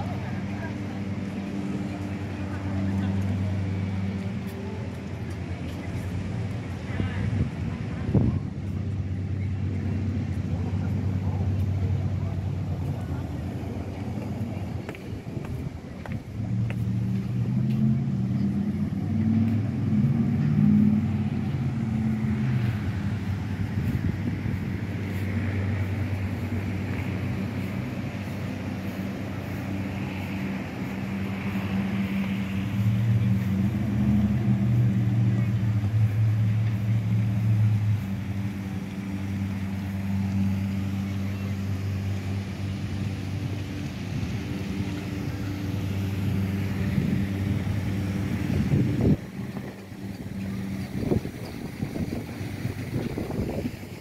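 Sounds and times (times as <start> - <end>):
background voices: 0.0 - 54.0
low engine drone: 0.0 - 54.0.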